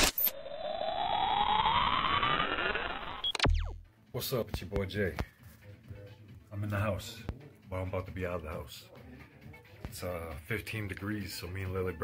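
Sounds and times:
rising synthetic tone: 0.0 - 3.9.

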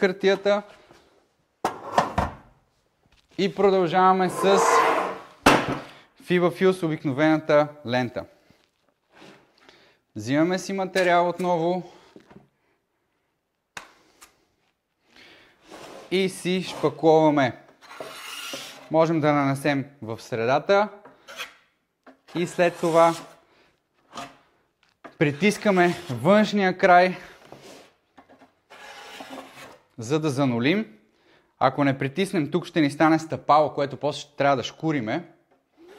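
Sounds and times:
compound scraping on metal: 4.2 - 5.4
trowel scraping joint compound: 4.2 - 5.4, 15.6 - 18.9, 21.0 - 23.4, 24.0 - 26.4, 27.3 - 30.0.

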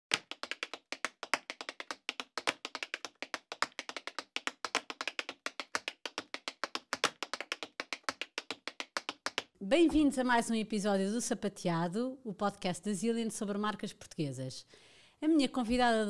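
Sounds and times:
tap shoes tapping: 0.1 - 10.0.

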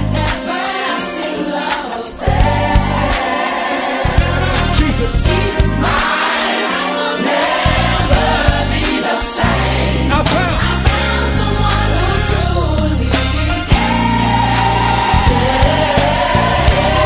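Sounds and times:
gospel choir with band: 0.0 - 17.0.

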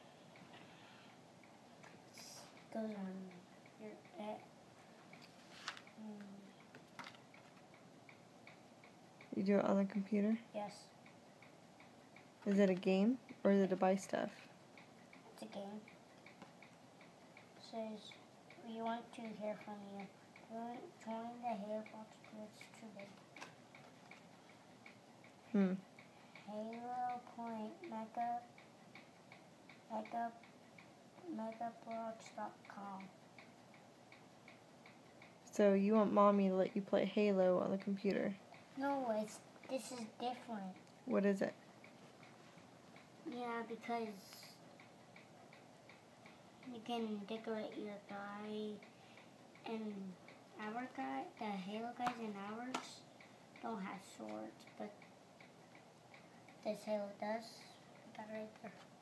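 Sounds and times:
faint even ticking: 0.0 - 59.0.

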